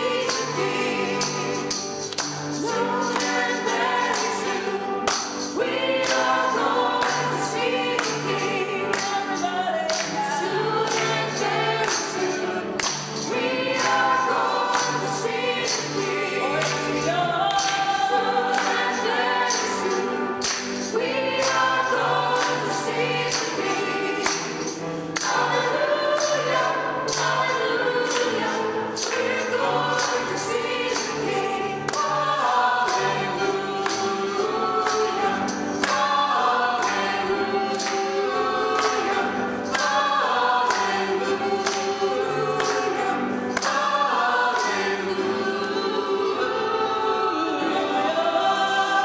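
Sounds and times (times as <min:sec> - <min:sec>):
congregation and choir singing hymn: 0:00.0 - 0:49.0
instrumental accompaniment: 0:00.0 - 0:49.0.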